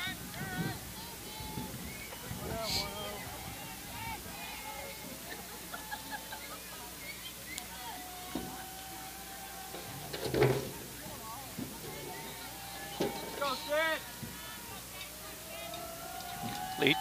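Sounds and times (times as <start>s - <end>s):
players shouting and chanting: 0.0s - 17.0s.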